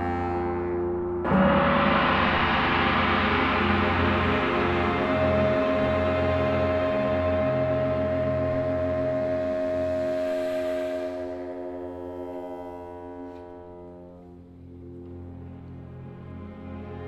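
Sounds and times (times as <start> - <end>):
baritone saxophone: 0.0 - 1.4, 4.5 - 15.4
orchestra holding a sustained chord: 1.2 - 17.0.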